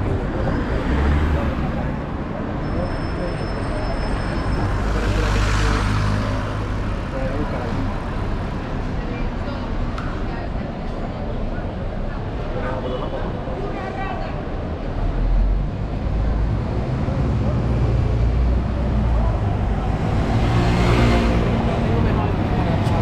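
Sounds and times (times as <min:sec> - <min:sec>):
city street traffic: 0:00.0 - 0:23.0
people chatting: 0:21.1 - 0:23.0.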